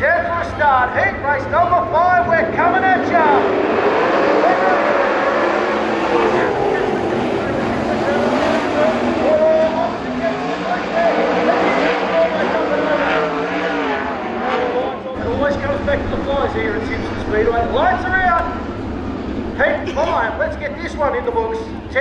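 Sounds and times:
racing car engines revving: 0.0s - 22.0s.

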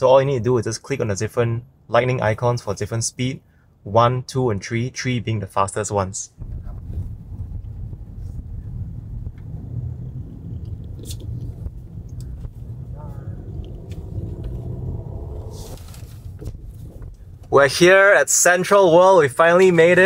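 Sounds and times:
road and tyre rumble: 6.4s - 17.8s.

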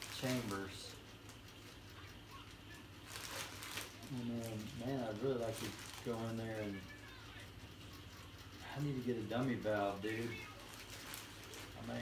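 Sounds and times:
steady low hum: 0.0s - 12.0s
plastic bag crinkling: 3.1s - 4.8s, 5.4s - 6.4s, 10.2s - 12.0s.

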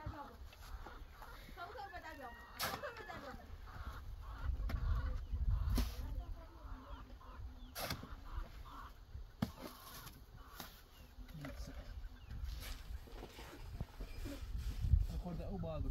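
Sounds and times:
shovel scraping wet mortar: 7.6s - 8.2s, 9.4s - 11.7s.

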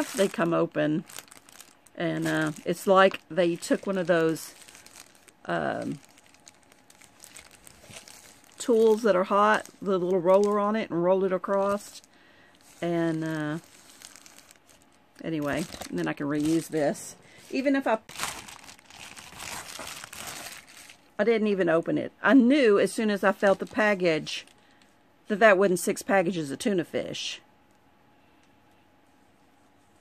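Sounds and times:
foil pouch pulled out: 0.0s - 10.6s, 11.4s - 21.0s
plastic mailer crinkling: 0.0s - 21.1s, 22.9s - 24.7s.

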